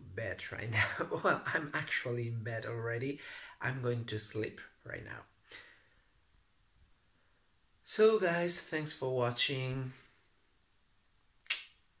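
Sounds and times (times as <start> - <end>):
finger snap: 11.4 - 11.8.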